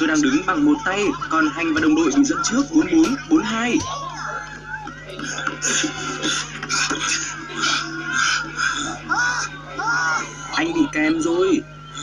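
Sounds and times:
cartoon music on television: 0:00.0 - 0:12.0
cartoon voices on television: 0:00.0 - 0:12.0
steady low hum: 0:00.0 - 0:12.0.

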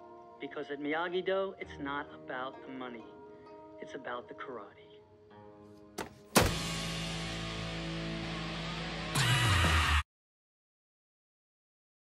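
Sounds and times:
laptop lid slamming shut: 0:06.0 - 0:06.7.

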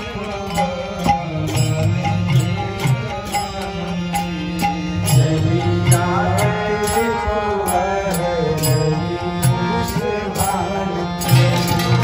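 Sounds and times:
person singing a chant: 0:00.0 - 0:12.0.

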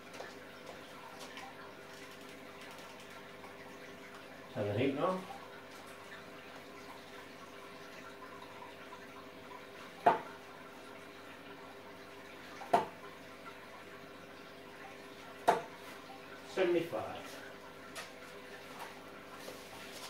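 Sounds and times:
aquarium filter hum: 0:00.0 - 0:20.0
water trickling: 0:00.0 - 0:20.0.

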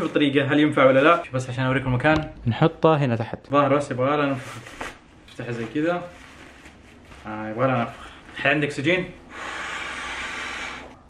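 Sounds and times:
breath blown into inflatable valve: 0:09.3 - 0:11.0.

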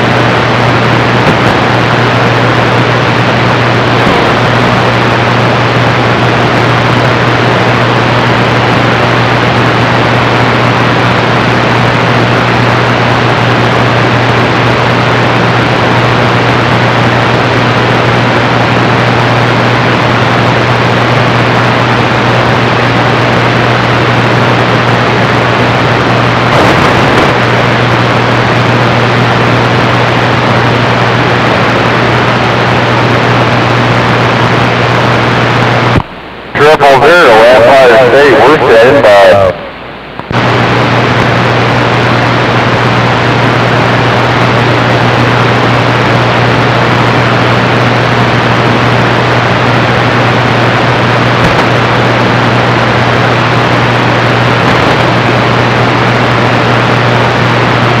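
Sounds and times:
radio static hissing: 0:00.0 - 0:58.0
steady low hum: 0:00.0 - 0:58.0
warbling radio transmission: 0:00.0 - 0:58.0.

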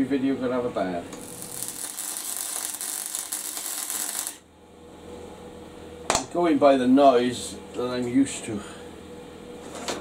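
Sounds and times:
faint low machine hum: 0:00.0 - 0:10.0
welding arc crackling hiss: 0:01.2 - 0:04.4.

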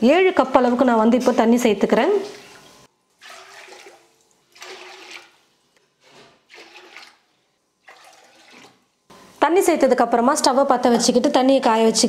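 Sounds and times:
water pouring into metal pot: 0:02.7 - 0:05.4, 0:06.5 - 0:08.8.

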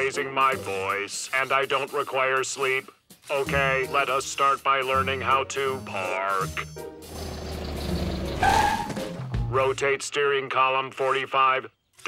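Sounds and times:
cartoon car engine running: 0:07.1 - 0:08.8
short high squeal: 0:08.4 - 0:09.0.

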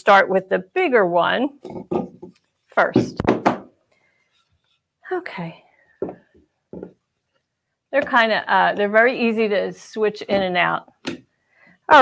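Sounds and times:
wooden boards knocking: 0:01.6 - 0:02.4, 0:03.0 - 0:03.7.

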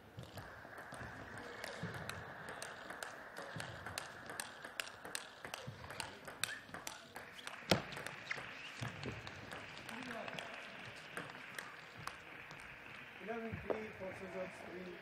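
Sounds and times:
indoor hall hum: 0:00.0 - 0:15.0
ping pong ball clicking: 0:00.2 - 0:13.8.

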